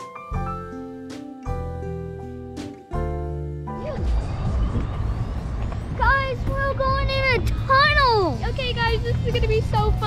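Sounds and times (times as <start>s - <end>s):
high-pitched wordless voice: 6.0s - 10.0s.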